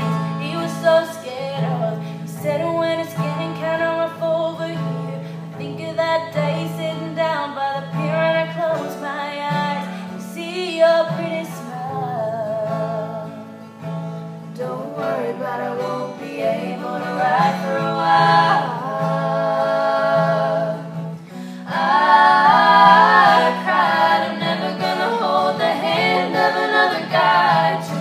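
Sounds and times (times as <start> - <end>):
strummed acoustic guitar: 0.0 - 28.0
voices singing in harmony: 14.6 - 28.0.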